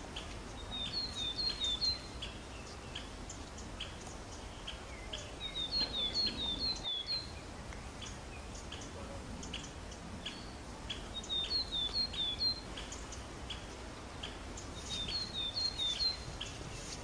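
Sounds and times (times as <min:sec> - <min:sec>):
steady outdoor hiss: 0:00.0 - 0:17.0.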